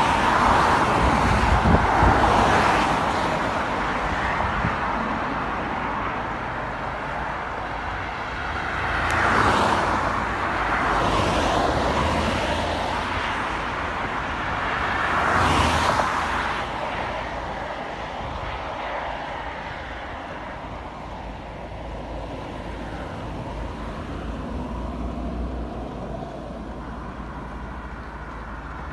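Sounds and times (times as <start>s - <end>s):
road traffic: 0.0s - 28.9s
vehicles passing close by: 0.0s - 28.9s.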